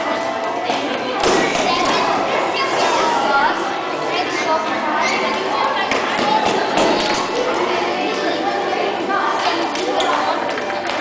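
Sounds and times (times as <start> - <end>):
children chattering in echoing hall: 0.0 - 11.0.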